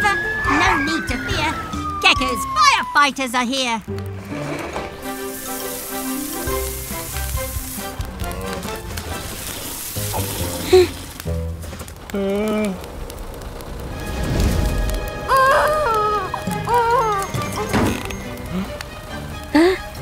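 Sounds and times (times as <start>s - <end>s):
light background music: 0.0s - 11.5s, 13.9s - 20.0s
water hissing from fire hose: 3.9s - 20.0s.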